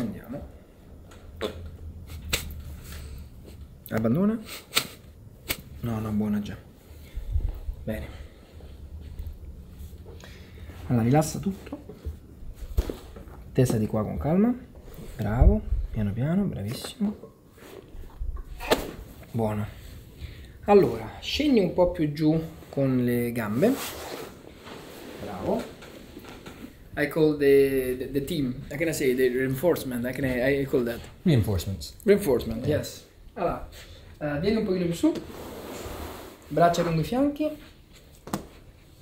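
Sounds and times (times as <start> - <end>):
spine cracking: 1.1 - 3.1, 18.2 - 19.3.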